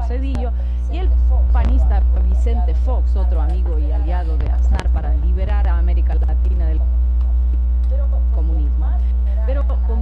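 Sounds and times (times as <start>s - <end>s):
low mains hum: 0.0s - 10.0s.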